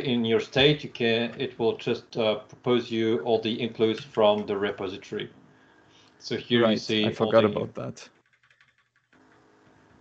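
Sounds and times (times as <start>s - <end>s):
faint keyboard clicks: 8.2s - 10.0s.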